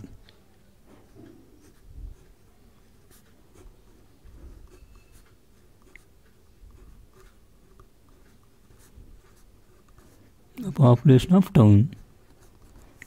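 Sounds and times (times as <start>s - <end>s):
pen scratching on paper: 1.1s - 10.4s.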